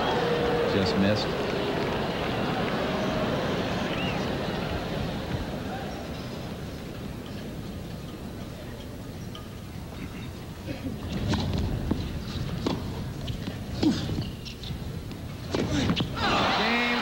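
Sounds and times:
hushed crowd: 0.0 - 11.8, 14.8 - 17.0.

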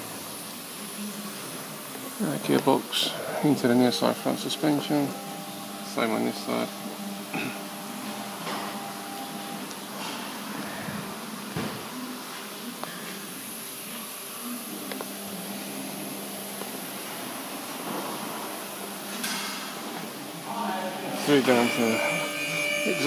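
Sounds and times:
steady mechanical hum: 0.0 - 23.0.

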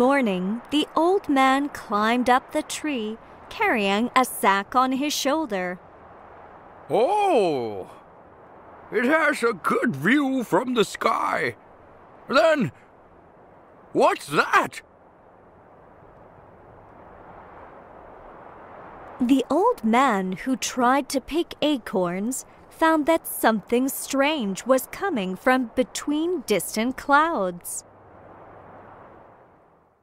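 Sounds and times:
faint steady rushing noise: 0.0 - 30.0.

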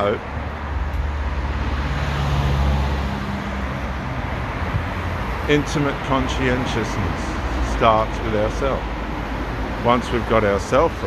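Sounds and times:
vehicle engine and road noise passing: 0.0 - 11.0.

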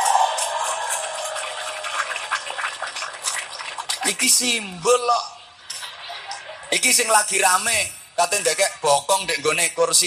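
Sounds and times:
audience clapping: 0.0 - 4.6
audience laughing: 5.7 - 6.8.

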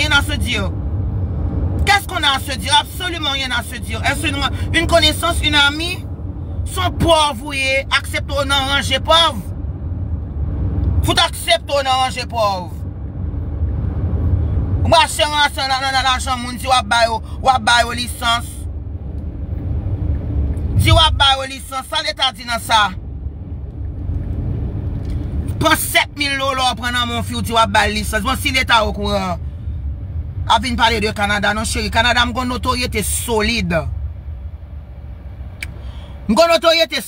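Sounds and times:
car cabin rumble: 0.0 - 35.7.

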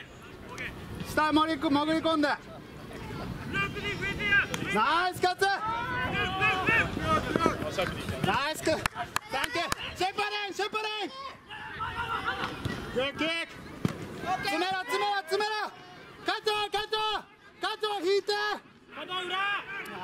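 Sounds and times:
general hubbub: 0.0 - 20.0
players shouting calls: 0.0 - 20.0.

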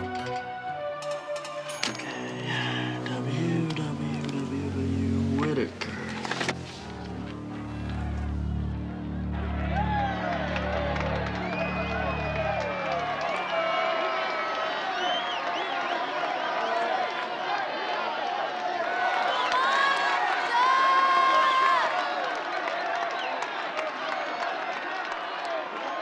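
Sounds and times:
crowd shouting and cheering: 6.0 - 26.0.

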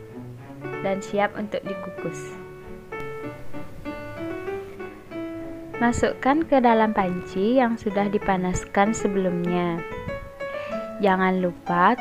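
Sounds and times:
slow piano melody: 0.0 - 12.0.

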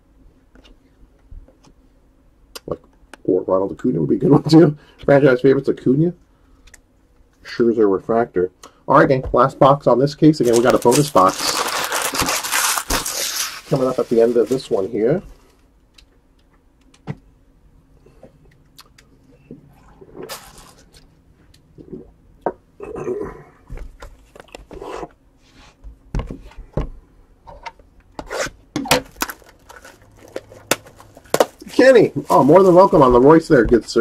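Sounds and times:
plastic wrapping crinkling: 10.4 - 15.2, 29.0 - 34.0.

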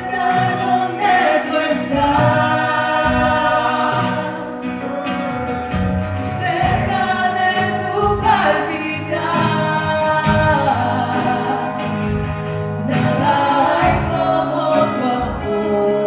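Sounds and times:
guitars: 0.0 - 16.0
steady drum beat: 0.0 - 16.0
voices singing together: 0.0 - 16.0.

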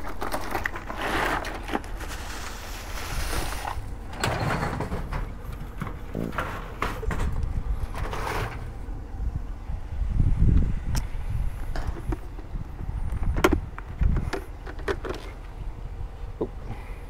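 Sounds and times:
metal drawer sliding on runners: 3.2 - 8.7.

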